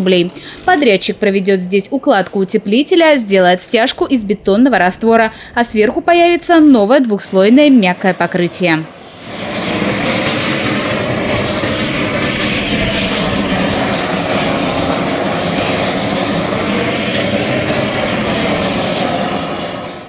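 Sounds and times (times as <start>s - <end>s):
roofing torch burning: 6.7s - 20.0s.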